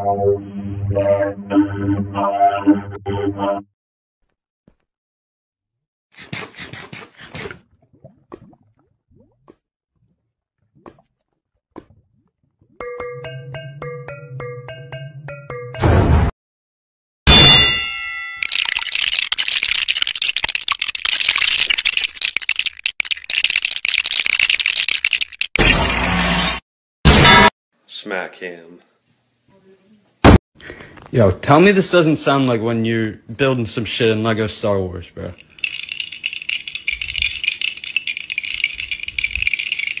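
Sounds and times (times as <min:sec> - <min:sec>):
ice balls clinking in a glass: 0:18.3 - 0:22.6, 0:35.4 - 0:40.0
game clicks and rattles: 0:18.4 - 0:25.5, 0:35.4 - 0:40.0.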